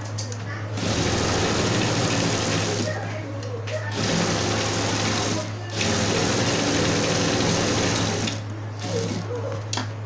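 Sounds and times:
sewing machine stitching: 0:00.7 - 0:03.0, 0:03.9 - 0:09.4.

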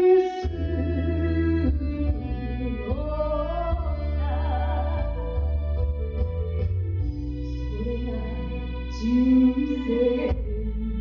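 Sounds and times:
woman singing into a microphone: 0:00.0 - 0:05.4, 0:07.5 - 0:11.0
karaoke backing track: 0:00.0 - 0:11.0.

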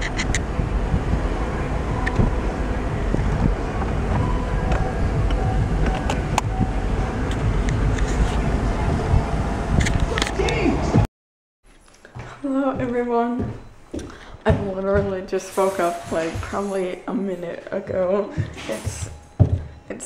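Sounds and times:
car engine running: 0:00.0 - 0:11.0
convertible roof mechanical hum: 0:00.0 - 0:11.1.

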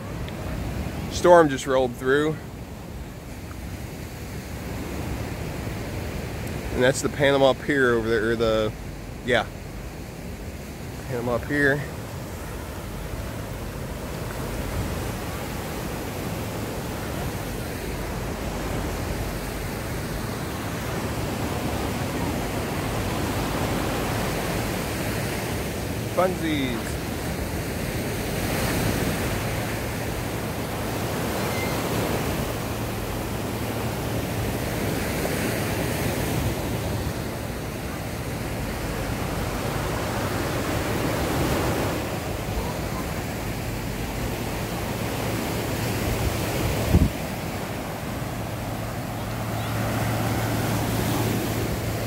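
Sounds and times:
surf breaking on a beach: 0:00.0 - 0:52.0
wind across microphone: 0:46.1 - 0:47.4.

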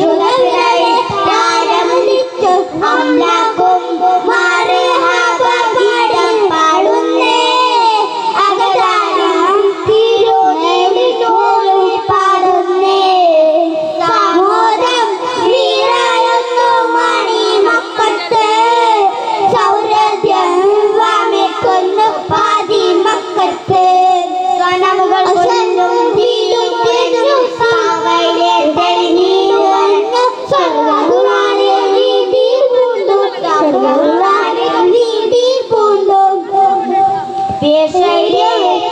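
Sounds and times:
boys singing into microphones: 0:00.0 - 0:38.9.

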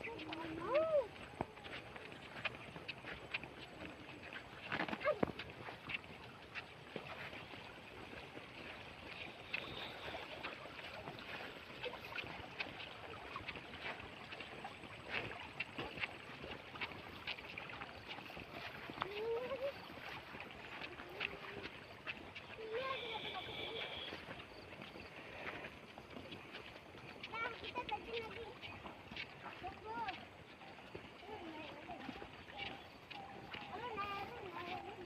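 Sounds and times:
shallow water rushing in channel: 0:00.0 - 0:35.0.

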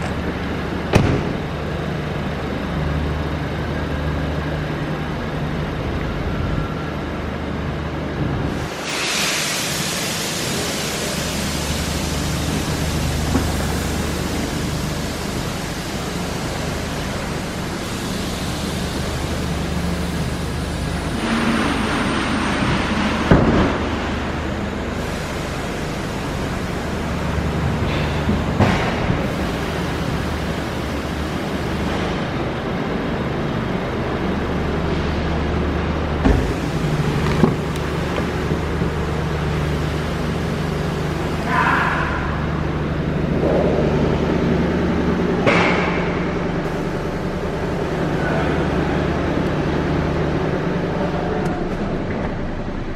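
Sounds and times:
steady low hum: 0:09.9 - 0:52.9.

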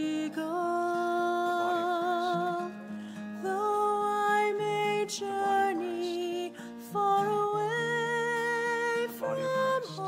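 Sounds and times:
person singing a hymn: 0:00.0 - 0:10.0.

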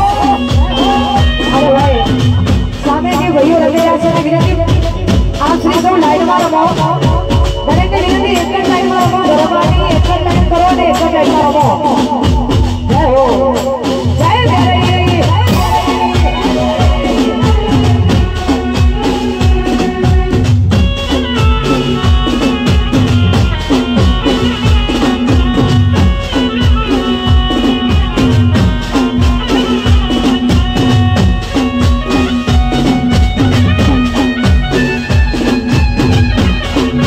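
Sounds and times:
drums beating fast: 0:00.0 - 0:37.0
folk music over loudspeakers: 0:00.0 - 0:37.0.

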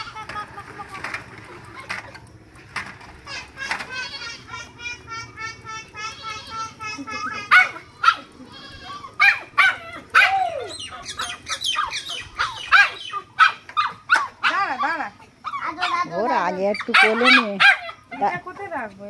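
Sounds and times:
puppy yapping: 0:07.2 - 0:08.3, 0:08.9 - 0:16.1, 0:16.7 - 0:18.3.

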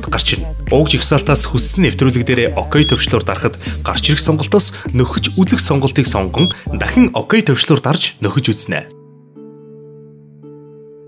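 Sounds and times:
narrator talking: 0:00.0 - 0:09.0.

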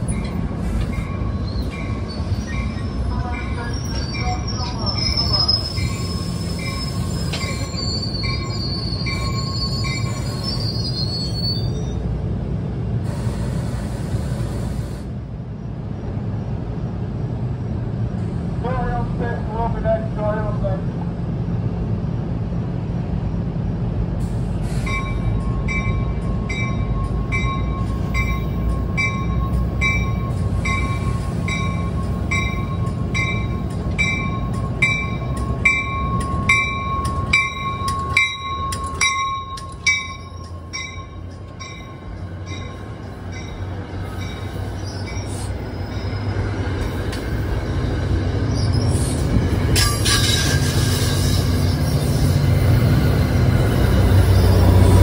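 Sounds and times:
train rumbling: 0:00.0 - 0:55.0
train brake squeal: 0:00.1 - 0:12.1, 0:24.2 - 0:25.6, 0:44.2 - 0:46.4, 0:48.4 - 0:52.9, 0:53.8 - 0:55.0.

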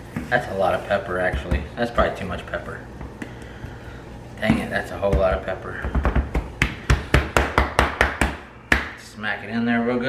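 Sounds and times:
hand slapping raw meat: 0:03.0 - 0:09.0.

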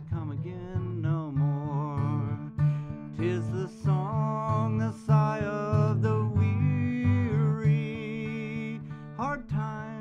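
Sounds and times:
acoustic guitar strumming: 0:00.0 - 0:10.0
wordless melody line: 0:00.0 - 0:10.0.

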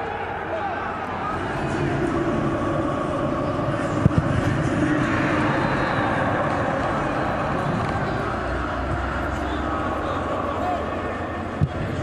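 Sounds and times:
faint voices: 0:00.0 - 0:12.0
stadium noise bed: 0:00.0 - 0:12.0
football being kicked: 0:04.0 - 0:04.5.

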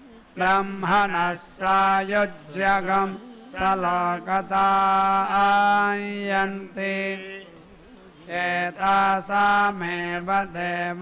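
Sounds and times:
men chanting in long tones: 0:00.0 - 0:11.0.

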